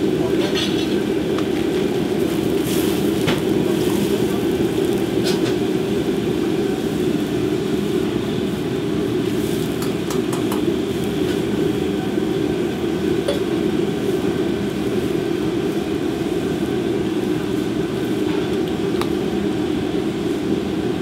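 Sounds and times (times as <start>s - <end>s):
gas burner roaring: 0.0s - 21.0s
water boiling: 0.0s - 21.0s.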